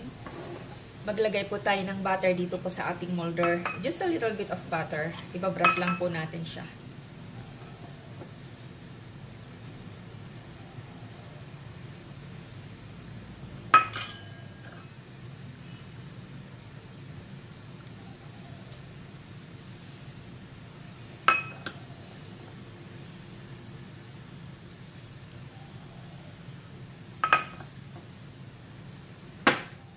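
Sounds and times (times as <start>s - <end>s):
spoon clinking on steel ramekins: 3.4s - 3.9s, 5.1s - 6.1s, 13.8s - 15.0s, 21.3s - 21.7s, 27.2s - 27.7s.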